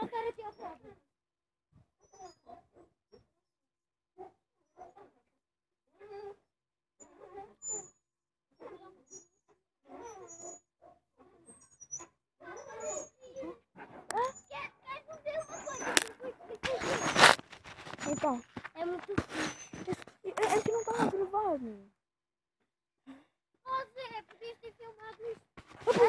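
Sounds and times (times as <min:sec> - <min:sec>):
swing hangers squeaking: 0:12.6 - 0:13.4, 0:14.1 - 0:21.3.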